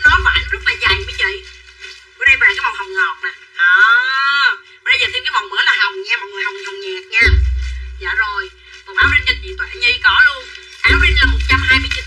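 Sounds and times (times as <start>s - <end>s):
woman talking fast: 0.0s - 1.6s, 2.2s - 12.0s.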